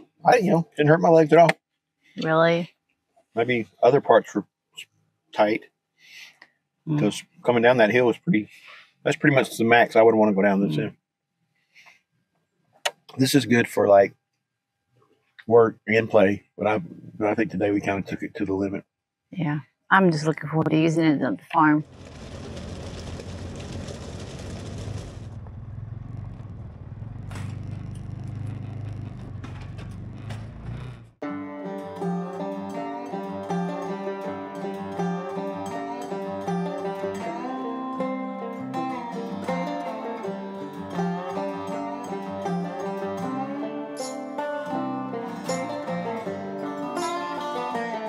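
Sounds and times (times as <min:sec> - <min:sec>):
plucked guitar music: 0:09.2 - 0:10.9, 0:31.2 - 0:48.0
car engine rumble: 0:21.6 - 0:31.2
tyres on gravel: 0:21.8 - 0:31.2.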